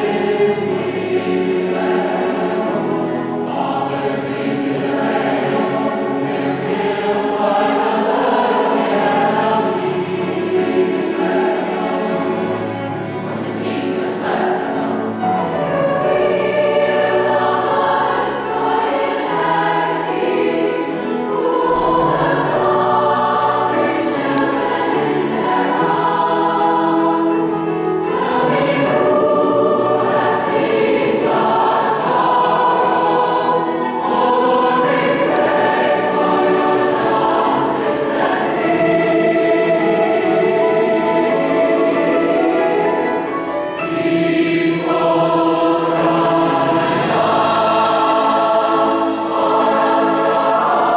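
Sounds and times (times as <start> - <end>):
mixed choir singing in harmony: 0.0 - 50.9.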